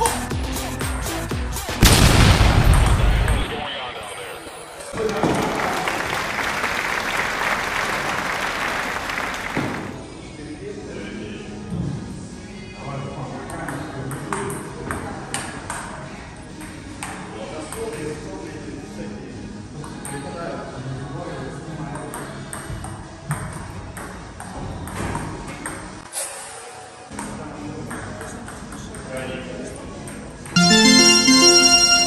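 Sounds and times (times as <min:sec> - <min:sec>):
background music: 0:00.0 - 0:03.4, 0:30.6 - 0:32.0.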